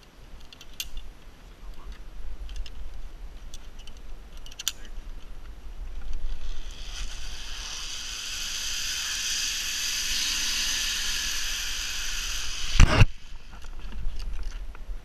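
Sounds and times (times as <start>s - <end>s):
pulley whirring whine: 6.2s - 14.0s.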